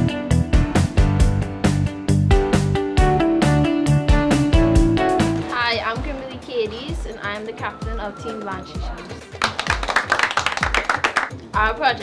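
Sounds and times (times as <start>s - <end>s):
background music with steady beat: 0.0s - 12.0s
small group clapping: 9.0s - 11.5s.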